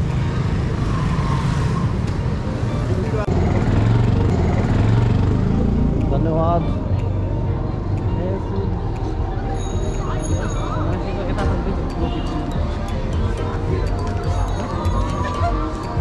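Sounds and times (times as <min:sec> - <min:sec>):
motorbikes passing: 0:00.0 - 0:16.0.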